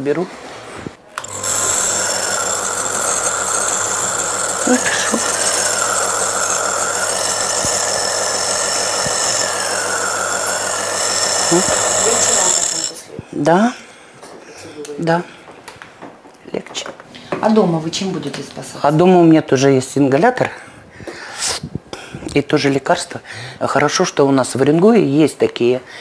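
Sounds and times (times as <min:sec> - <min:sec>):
compressor nebulizer hum: 0:01.0 - 0:13.1.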